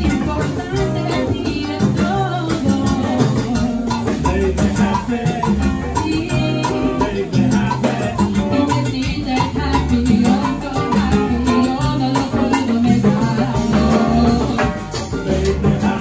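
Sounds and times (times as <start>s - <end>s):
salsa band playing: 0.0s - 16.0s.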